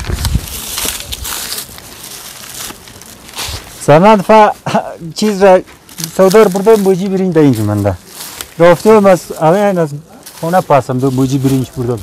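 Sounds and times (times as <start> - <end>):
men talking: 3.7 - 12.0.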